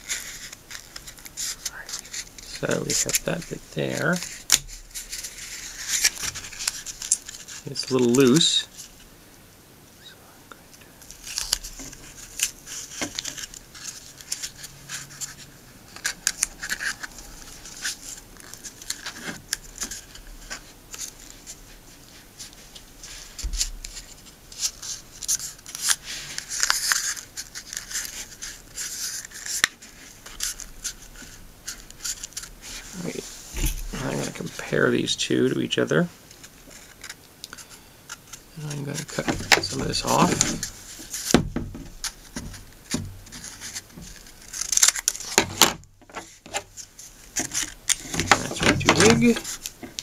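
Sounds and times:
tape and paper crinkling: 0.0s - 9.1s, 11.0s - 50.0s.

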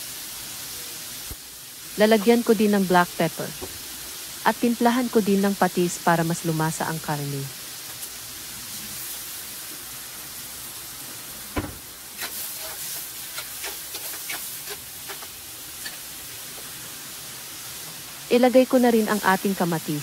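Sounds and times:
meat sizzling in a wok: 0.0s - 20.0s
knock: 11.6s - 11.8s
spatula scraping a pan: 12.2s - 16.0s.

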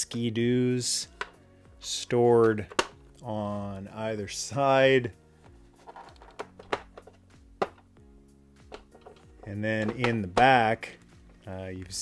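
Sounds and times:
soft background music: 0.0s - 12.0s
plastic toy clicks and knocks: 5.8s - 7.8s, 8.7s - 10.5s.

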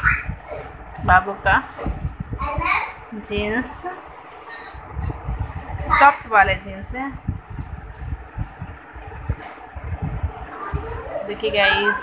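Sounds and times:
microphone handling rumble and knocks: 0.0s - 11.8s.

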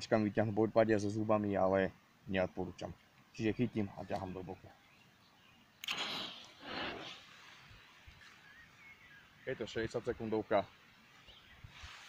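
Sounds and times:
smoke grenade igniting with hiss: 5.8s - 7.4s.

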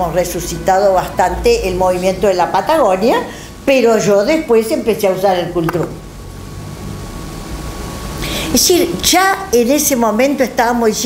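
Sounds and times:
faint high hum: 0.0s - 11.0s
even hiss: 1.3s - 11.0s.

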